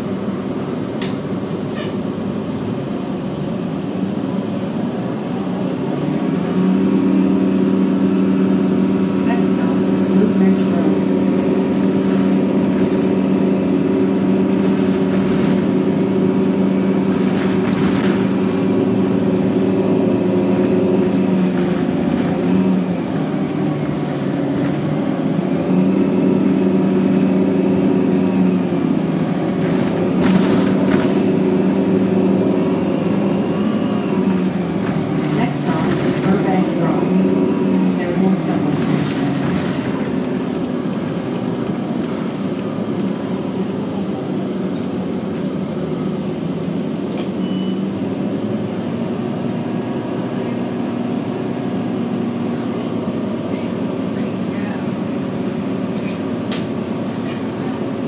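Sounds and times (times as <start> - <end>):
bus drivetrain droning hum: 0.0 - 58.0.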